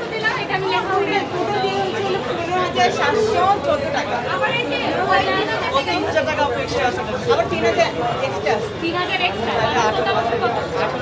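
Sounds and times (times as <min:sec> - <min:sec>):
overlapping chatter: 0:00.0 - 0:11.0.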